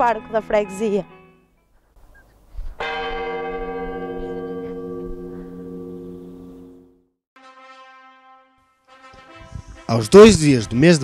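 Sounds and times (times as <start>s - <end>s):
church bell ringing: 2.8s - 7.1s.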